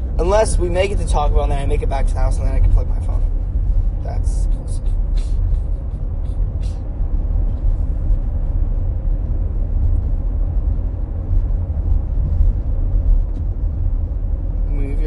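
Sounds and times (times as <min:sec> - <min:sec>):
car road rumble from inside: 0:00.0 - 0:15.0.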